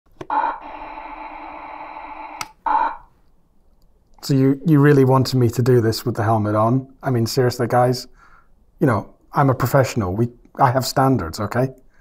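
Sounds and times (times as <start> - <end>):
electronic buzzing tone: 0.2 - 3.1.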